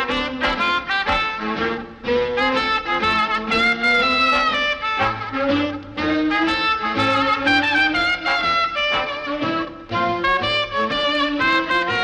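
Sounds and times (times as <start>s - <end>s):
swing big band music: 0.0s - 12.0s
trumpet playing melody: 0.0s - 12.0s.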